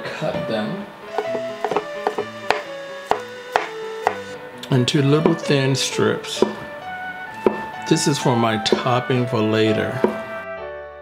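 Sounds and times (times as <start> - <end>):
soft background music: 0.0 - 11.0
knife cutting on wooden board: 1.2 - 4.3, 6.4 - 6.7, 7.4 - 7.7, 10.0 - 10.3.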